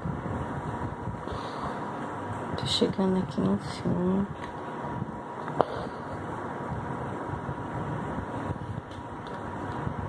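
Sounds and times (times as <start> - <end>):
room noise: 0.0 - 10.0.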